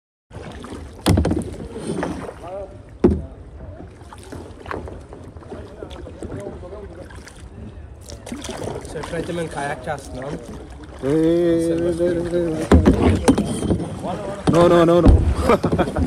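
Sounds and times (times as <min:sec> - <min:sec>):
paddle swishing water: 0:00.3 - 0:16.0
loud knocks: 0:01.0 - 0:01.6, 0:12.6 - 0:13.6, 0:14.4 - 0:16.0.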